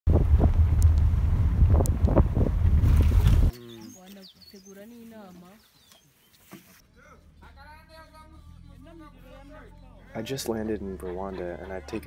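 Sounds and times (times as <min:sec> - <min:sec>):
wind buffeting microphone: 0:00.1 - 0:03.5.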